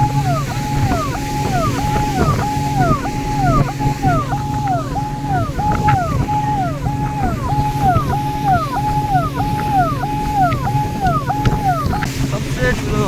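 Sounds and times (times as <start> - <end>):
repeating falling tone: 0.0 - 12.7
speedboat engine droning: 0.0 - 13.0.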